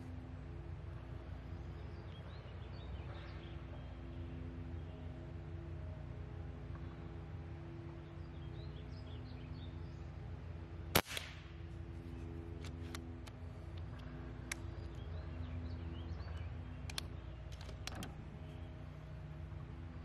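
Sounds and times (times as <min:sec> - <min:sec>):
air rifle shot: 0:10.9 - 0:11.6
light metallic clicks: 0:12.6 - 0:15.1, 0:16.2 - 0:18.6.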